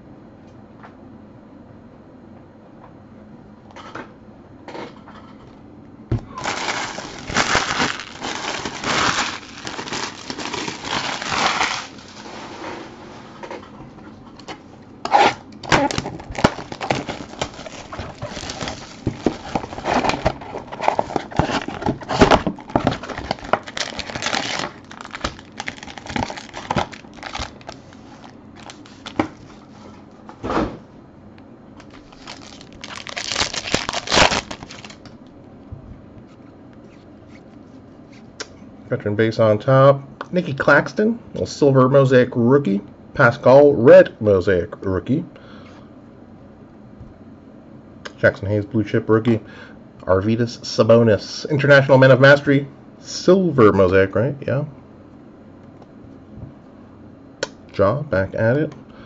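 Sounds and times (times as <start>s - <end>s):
foil packs rustling: 6.2s - 13.2s, 15.7s - 29.9s, 31.8s - 35.2s
plastic wrapping crinkling: 6.3s - 12.6s, 15.7s - 29.8s, 31.8s - 35.2s.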